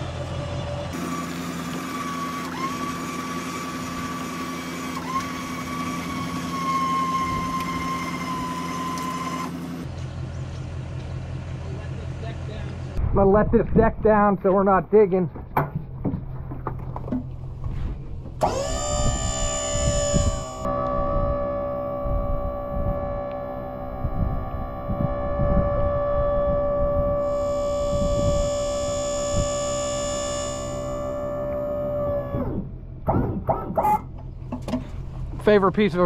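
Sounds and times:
hydraulic pump whine: 0.0s - 9.9s, 16.4s - 35.4s.

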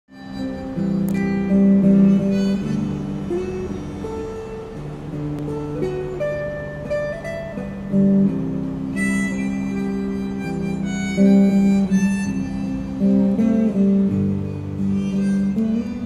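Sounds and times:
electric guitar melody: 0.1s - 16.0s.

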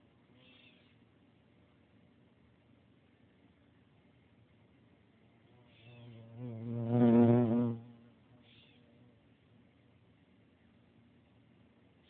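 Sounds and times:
bee buzzing: 5.8s - 8.0s.

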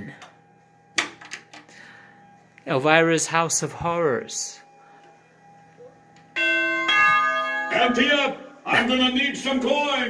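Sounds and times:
pinball machine chime: 6.3s - 10.0s
man speaking: 7.7s - 10.0s.

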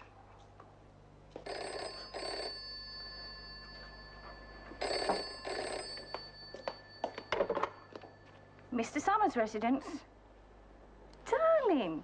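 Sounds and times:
telephone ringing: 1.3s - 9.0s.

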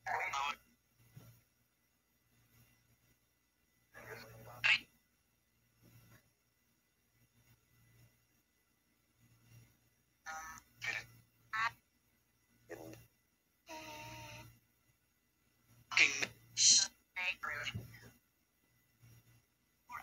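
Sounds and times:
clipped radio voice fragments: 4.0s - 4.9s, 15.9s - 17.8s.

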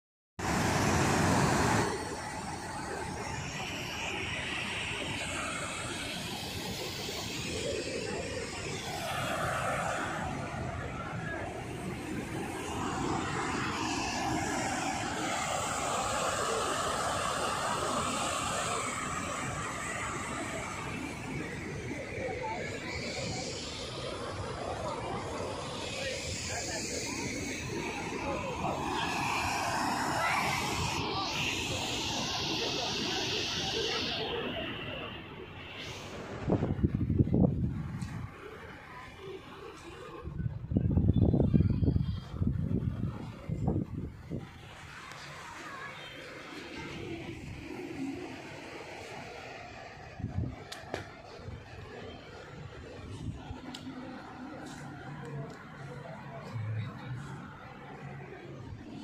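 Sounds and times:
faint voices: 0.4s - 59.0s.

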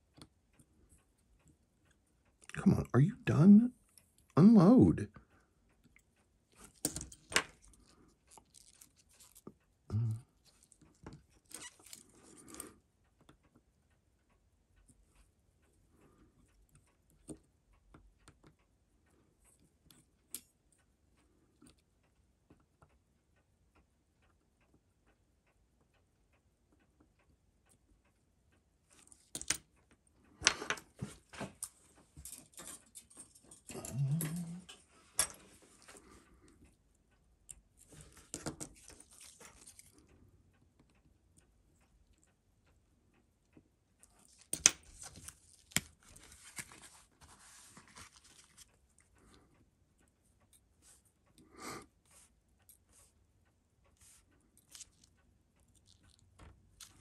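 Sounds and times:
tweezers clicking and scraping: 5.9s - 9.6s, 10.5s - 12.7s, 31.6s - 36.1s, 37.5s - 40.2s, 44.0s - 47.0s, 54.0s - 57.0s.

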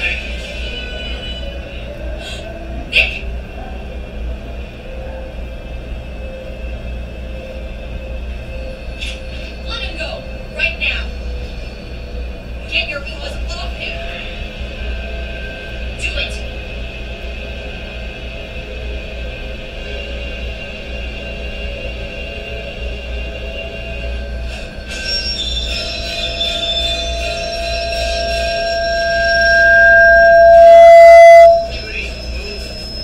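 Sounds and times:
train rumbling: 0.0s - 33.0s
tense music: 16.5s - 33.0s
high squeal: 22.1s - 33.0s.

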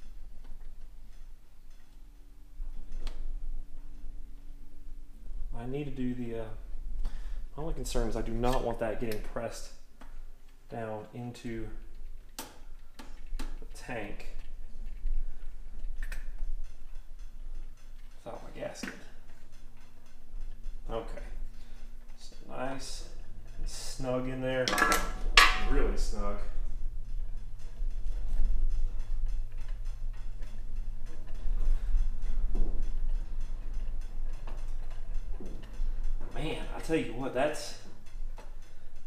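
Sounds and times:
small rapid clicks and creaks: 0.0s - 39.0s
steady low hum: 0.0s - 39.0s.

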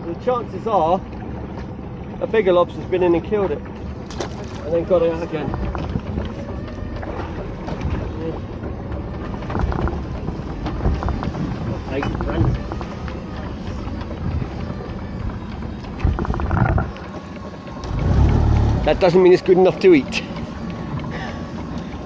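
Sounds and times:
boat engine low rumble: 0.0s - 22.0s.

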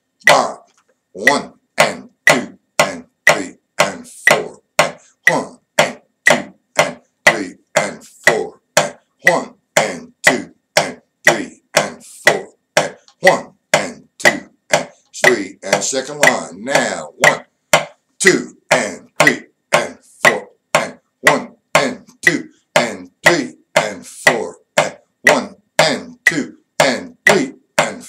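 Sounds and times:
drumstick strokes tapping: 0.2s - 28.0s.

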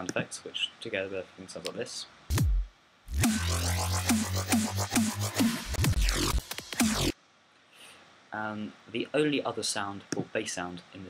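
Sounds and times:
growling synth bass: 2.3s - 7.1s.

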